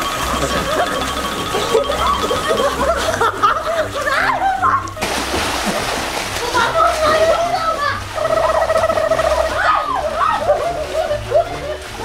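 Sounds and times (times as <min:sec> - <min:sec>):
background music with steady beat: 0:00.0 - 0:12.0
water splashing and churning: 0:00.0 - 0:12.0
excited shrieks and voices: 0:06.8 - 0:12.0.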